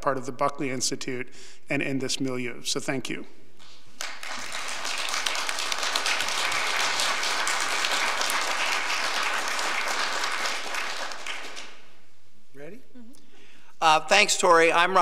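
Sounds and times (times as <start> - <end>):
audience applauding: 3.9 - 12.0.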